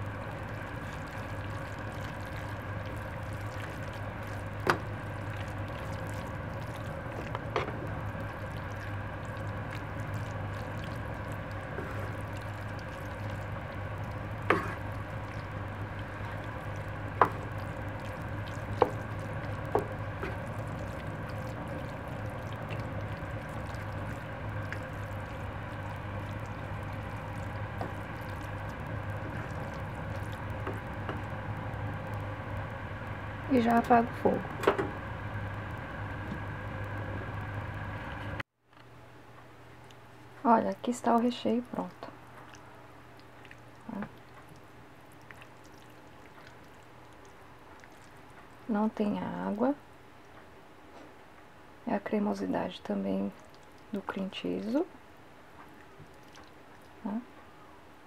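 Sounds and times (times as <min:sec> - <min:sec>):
wet squishy stirring: 0:00.0 - 0:37.4, 0:40.8 - 0:48.7, 0:53.3 - 0:54.7, 0:55.6 - 0:57.0
steady low hum: 0:00.0 - 0:58.0.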